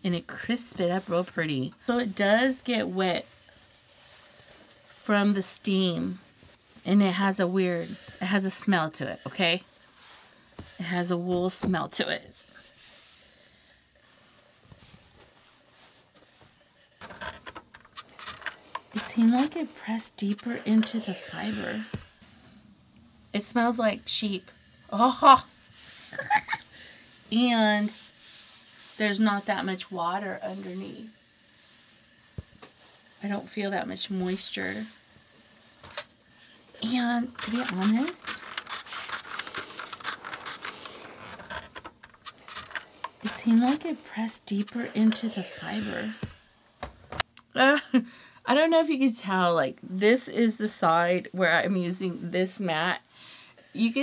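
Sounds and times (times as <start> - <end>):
iron pushed across fabric: 17.9 - 22.3, 27.3 - 46.5
fabric rustling and scraping: 27.2 - 31.1, 36.9 - 46.2.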